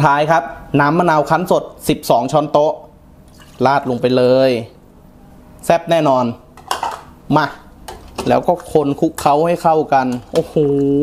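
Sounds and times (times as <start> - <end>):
utensil clinking on cookware: 6.6 - 7.1.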